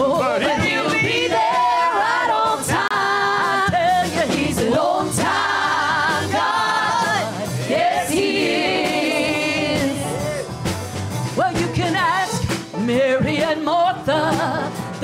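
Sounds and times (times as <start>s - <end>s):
vocal group singing in harmony: 0.0s - 10.6s, 13.0s - 15.0s.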